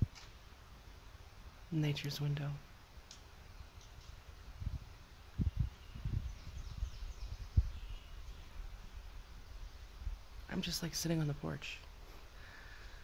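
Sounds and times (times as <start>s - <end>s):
faint bird chirps: 5.3s - 8.8s.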